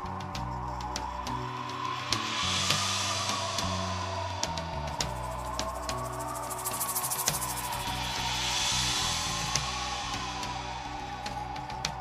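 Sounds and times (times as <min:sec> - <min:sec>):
hiss: 0:00.0 - 0:12.0.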